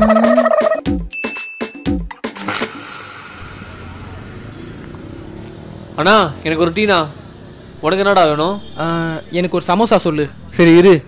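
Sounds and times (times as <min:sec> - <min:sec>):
traffic noise: 0:02.8 - 0:11.0.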